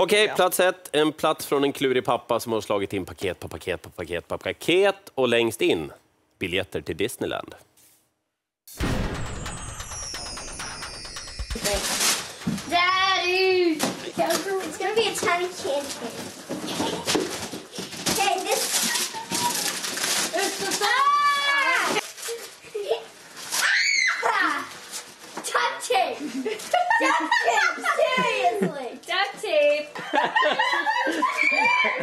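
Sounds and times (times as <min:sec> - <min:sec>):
child's voice: 0:12.7 - 0:17.2, 0:18.1 - 0:19.8, 0:25.4 - 0:26.3, 0:27.4 - 0:29.8
child squealing: 0:23.6 - 0:24.6, 0:31.2 - 0:32.0.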